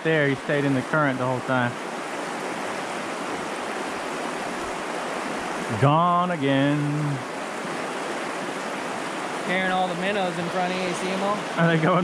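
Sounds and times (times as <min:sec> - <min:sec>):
river water rushing over rocks: 0:00.0 - 0:12.0.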